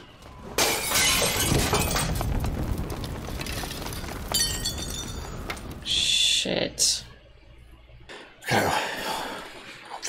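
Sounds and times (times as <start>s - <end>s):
window glass shattering: 0.5s - 2.4s, 3.3s - 5.6s.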